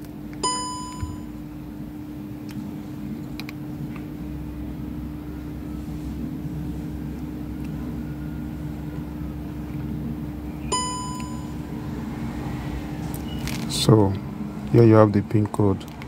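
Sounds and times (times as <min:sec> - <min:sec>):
low hum drone: 0:00.0 - 0:16.0
short electronic beep: 0:00.4 - 0:01.3, 0:10.6 - 0:11.6.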